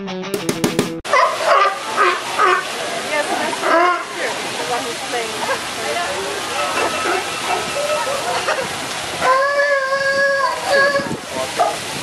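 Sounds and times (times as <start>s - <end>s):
guitar and drum music: 0.0s - 1.1s
sea lion barking: 1.1s - 11.8s
waterfall rushing: 1.1s - 12.0s.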